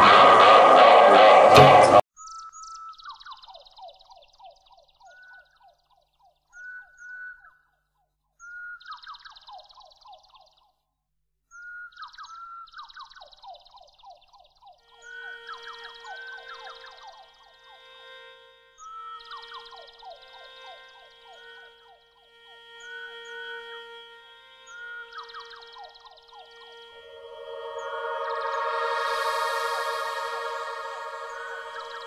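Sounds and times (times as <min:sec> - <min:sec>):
songbird singing: 0:02.1 - 0:07.8, 0:08.4 - 0:10.8, 0:11.5 - 0:17.9, 0:18.8 - 0:24.0, 0:24.6 - 0:32.0
faint high twittering: 0:11.6 - 0:24.0, 0:24.6 - 0:32.0
soft music with held tones: 0:14.8 - 0:32.0
loud music: 0:26.9 - 0:32.0.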